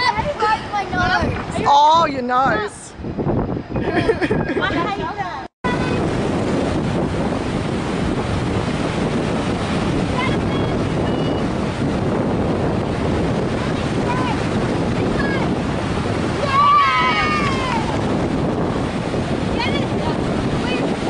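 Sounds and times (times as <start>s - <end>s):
ocean surf breaking: 0.0s - 21.0s
wind buffeting microphone: 0.0s - 21.0s.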